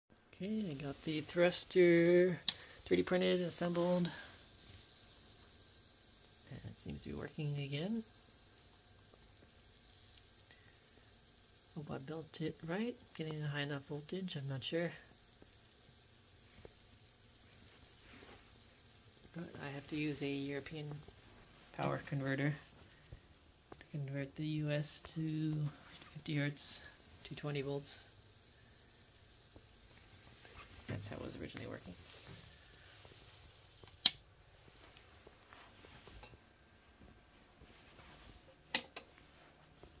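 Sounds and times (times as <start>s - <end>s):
faint steady hiss: 0.1s - 40.0s
sharp clicks: 33.8s - 34.2s, 38.7s - 39.1s
small click: 38.7s - 39.1s.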